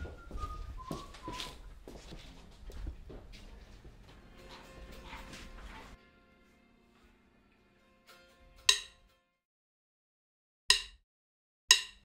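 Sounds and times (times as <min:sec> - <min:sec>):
person whistling: 0:00.0 - 0:01.7
soft footsteps: 0:00.0 - 0:06.0.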